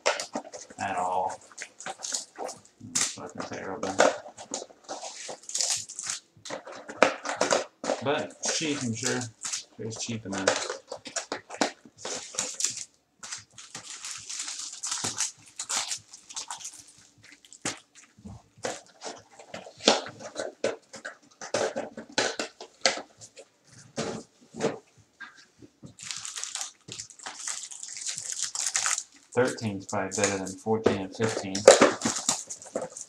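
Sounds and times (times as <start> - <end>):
plastic wrapper crinkling: 0.0 - 33.0.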